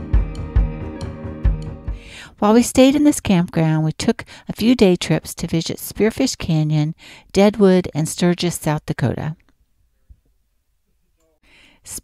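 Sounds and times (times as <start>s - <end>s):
woman breathing in: 1.9s - 2.4s, 4.3s - 4.5s, 7.0s - 7.3s, 11.4s - 11.9s
woman speaking: 2.4s - 9.4s.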